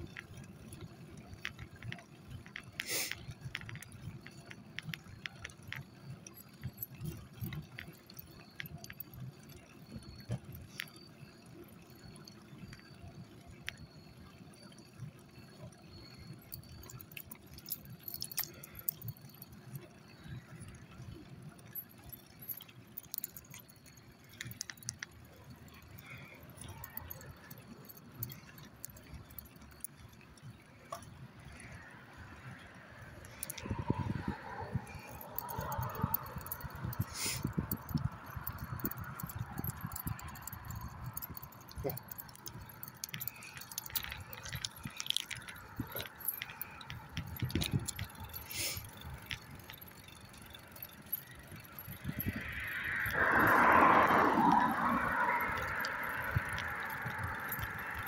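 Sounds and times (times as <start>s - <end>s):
light metallic jingling: 0.0s - 58.0s
small wheels rolling on pavement: 0.0s - 58.0s.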